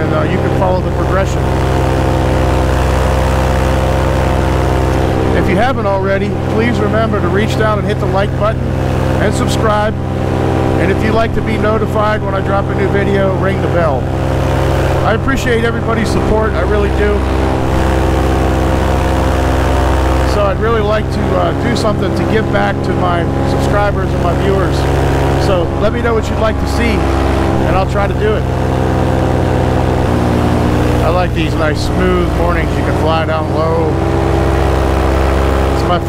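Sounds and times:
paramotor engine droning: 0.0 - 36.0.

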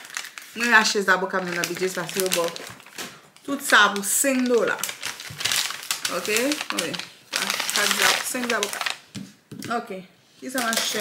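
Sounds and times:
plastic packaging crinkling: 0.0 - 9.4, 10.4 - 11.0
woman speaking: 0.6 - 2.7, 3.4 - 4.9, 6.0 - 8.8, 9.6 - 11.0.

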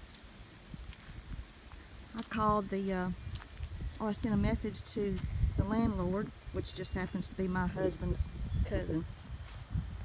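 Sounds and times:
low rumble on microphone: 0.6 - 10.0.

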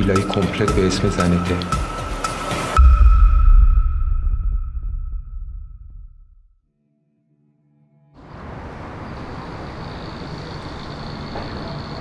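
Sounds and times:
deep low rumble: 2.8 - 6.5.

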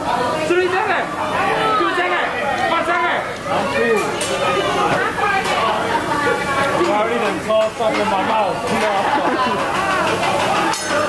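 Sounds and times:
overlapping conversation: 0.0 - 11.0.

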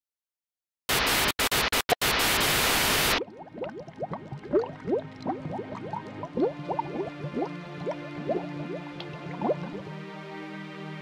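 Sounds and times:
underwater bubbles rising in pitch: 3.2 - 9.9
music drone: 5.9 - 11.0.

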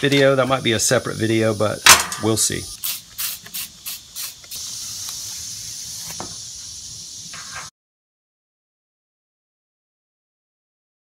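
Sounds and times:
aerosol spray can hissing: 0.5 - 7.7.

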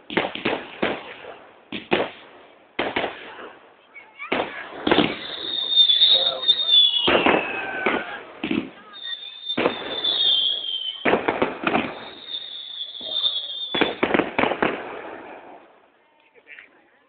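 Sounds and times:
firework shells bursting: 4.3 - 15.7
firework whistling: 4.4 - 15.7.

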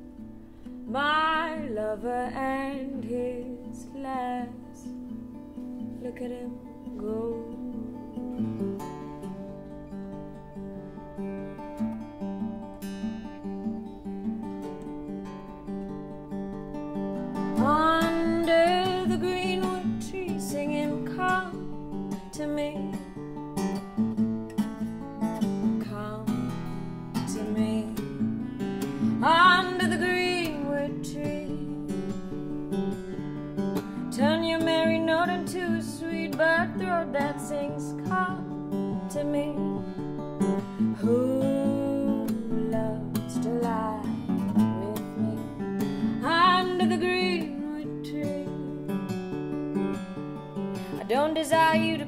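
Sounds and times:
acoustic guitar bluesy accompaniment: 0.0 - 52.0.

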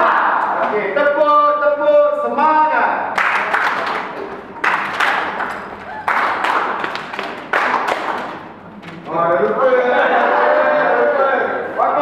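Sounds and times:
people clapping: 3.2 - 8.6.

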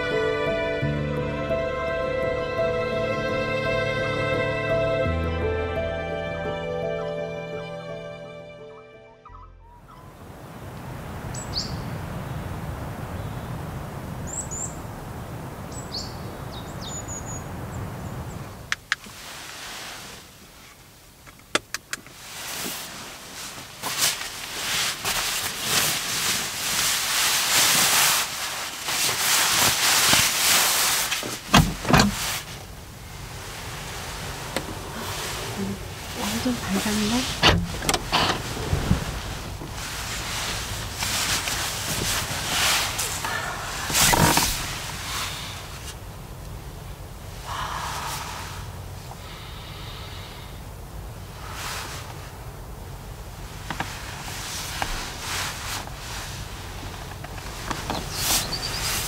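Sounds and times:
bird chirping: 9.3 - 10.2, 11.3 - 12.0, 15.7 - 18.4, 57.9 - 59.0
sleeping bag and clothing rustling: 19.1 - 20.8, 22.1 - 46.0, 53.4 - 59.0.

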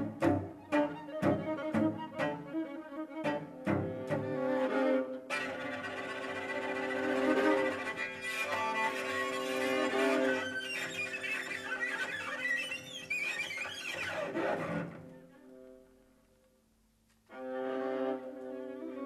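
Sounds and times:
bowed strings ensemble: 0.0 - 16.1, 17.3 - 19.0.

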